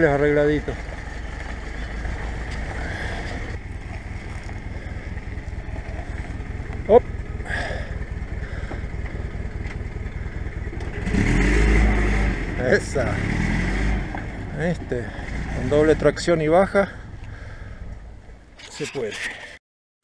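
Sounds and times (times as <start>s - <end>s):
engine running slowly: 0.0s - 18.6s.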